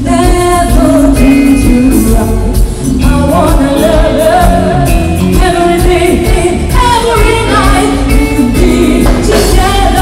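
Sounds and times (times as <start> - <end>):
live band music: 0.0 - 10.0
woman singing: 0.0 - 10.0.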